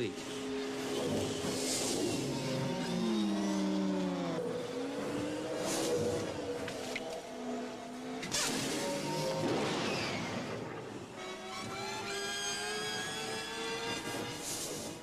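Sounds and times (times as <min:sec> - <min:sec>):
engine whines gliding down in pitch: 0:00.0 - 0:15.0.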